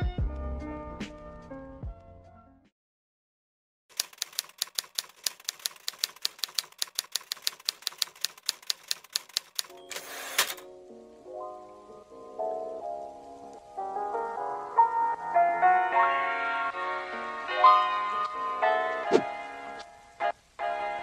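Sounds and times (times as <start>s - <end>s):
typewriter keys clacking: 3.9s - 10.6s
soft piano music: 10.6s - 21.0s.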